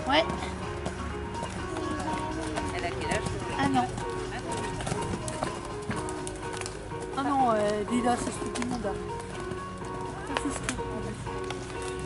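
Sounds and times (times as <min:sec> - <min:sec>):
background music: 0:00.0 - 0:12.0
horse hoofbeats on sand: 0:00.0 - 0:12.0.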